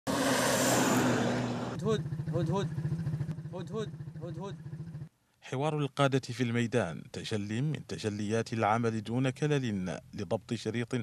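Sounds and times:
wind and tyre noise: 0.1 - 3.4
truck engine running: 1.2 - 5.1
engine throbbing inside cab: 1.6 - 5.1
man speaking: 1.8 - 2.8, 3.5 - 4.6, 5.4 - 11.0.

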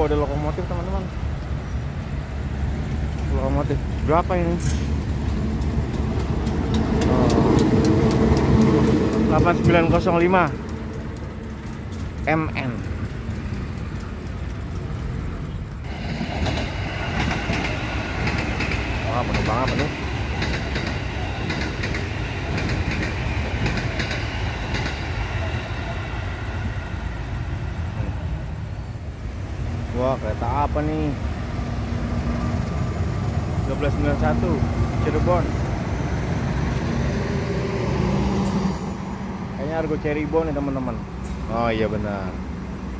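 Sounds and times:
locomotive engine drone passing: 0.0 - 42.9.

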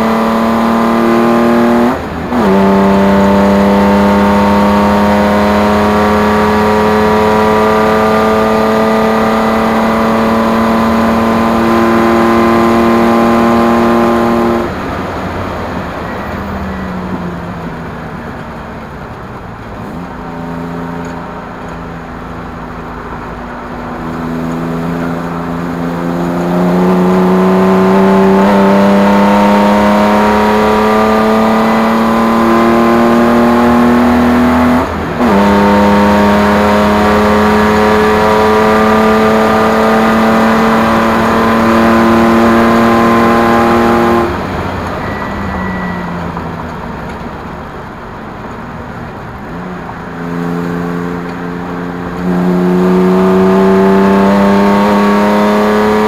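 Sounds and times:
race car engine accelerating: 0.0 - 15.2, 19.7 - 47.4, 49.1 - 56.0.

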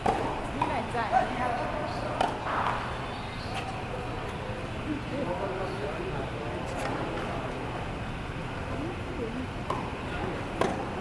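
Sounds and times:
tennis racket hitting ball: 0.0 - 0.7, 2.1 - 2.8, 10.6 - 11.0.

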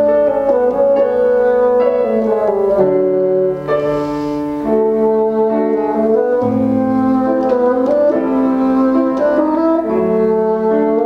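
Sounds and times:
bassoon playing: 0.0 - 11.0
piano playing: 0.0 - 11.0.

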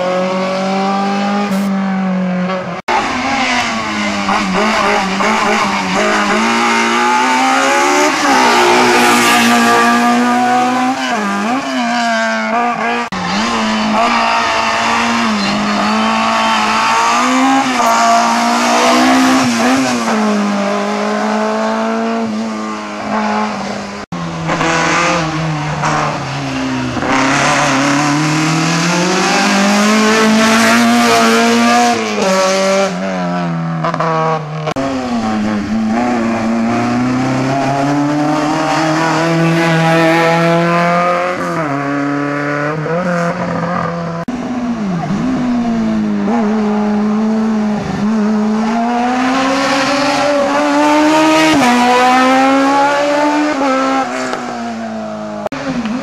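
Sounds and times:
car engines revving hard: 0.0 - 56.0.

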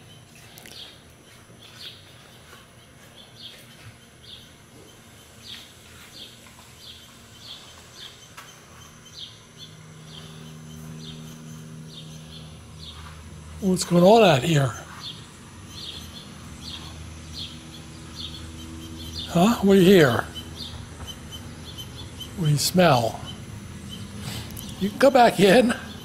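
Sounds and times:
bird chirping: 0.0 - 26.0
low steady hum: 0.0 - 26.0.

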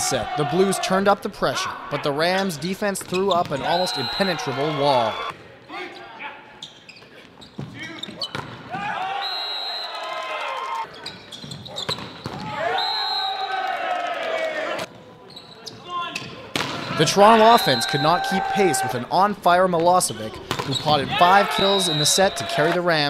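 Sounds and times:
players calling out: 0.0 - 6.4, 15.6 - 23.0
volleyball being hit: 20.4 - 20.7.

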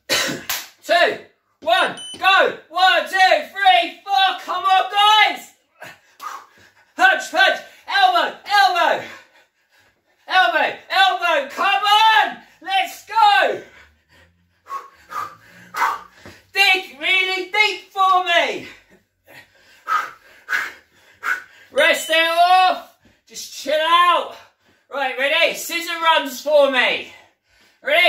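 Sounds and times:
sharp breaths: 5.7 - 7.0, 13.6 - 16.6, 18.8 - 21.8.

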